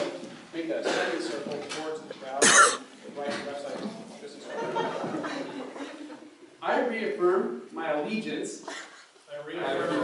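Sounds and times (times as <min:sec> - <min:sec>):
man talking: 0:00.0 - 0:05.0, 0:06.6 - 0:08.7
loud cough: 0:02.4 - 0:02.8.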